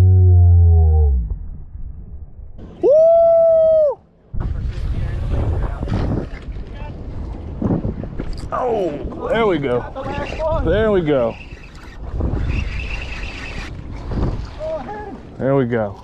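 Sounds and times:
loud low held tone: 0.0s - 2.6s
water noise: 0.0s - 16.0s
wind buffeting microphone: 4.3s - 15.9s.

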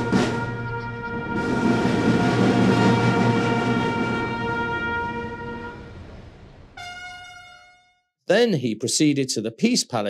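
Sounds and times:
drums rumbling: 0.0s - 6.8s
brass band sustained chord: 0.0s - 8.0s.

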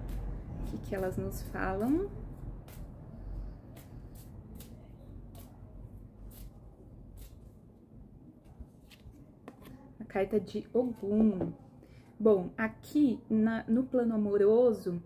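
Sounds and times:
cards being shuffled: 3.7s - 5.6s, 6.2s - 7.6s, 8.7s - 9.8s.

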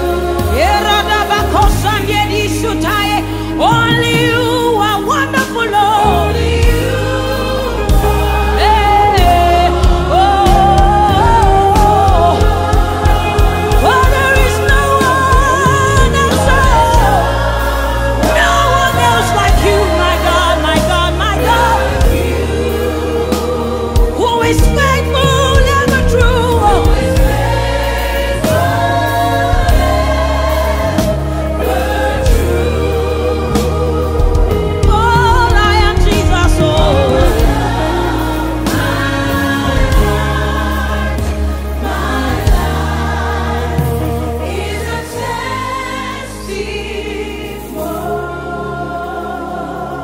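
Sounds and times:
band playing: 0.0s - 50.0s
low bass: 0.0s - 50.0s
low musical accompaniment: 0.0s - 50.0s
voices singing held notes: 0.0s - 50.0s.

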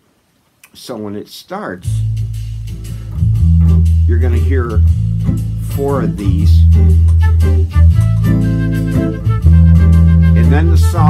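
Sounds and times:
bass guitar low notes: 1.8s - 11.0s
guitar: 1.8s - 11.0s
light ticking percussion: 1.8s - 11.0s.

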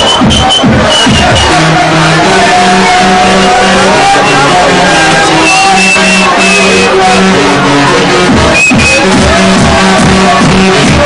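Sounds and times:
electronic dance music: 0.0s - 11.0s
stepping bass line: 0.0s - 11.0s.

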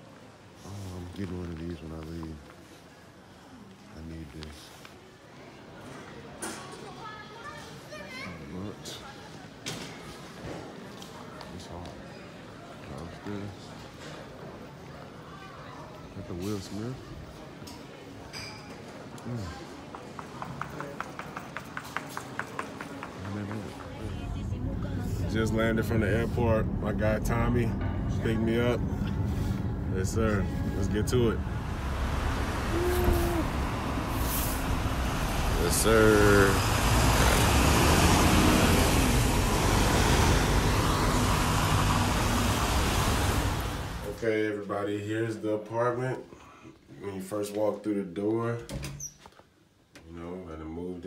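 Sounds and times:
city traffic rumble: 19.1s - 44.4s
people talking: 23.0s - 28.8s, 29.9s - 31.4s, 32.5s - 34.5s, 35.2s - 37.6s
background voices: 23.2s - 44.2s
child's high voice: 32.7s - 33.5s
brief hiss: 34.1s - 34.7s.

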